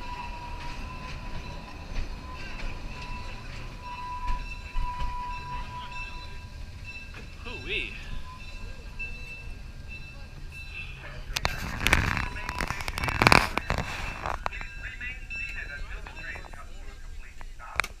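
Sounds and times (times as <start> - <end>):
passengers' voices: 0.0 - 18.0
train rumbling along track: 0.0 - 18.0.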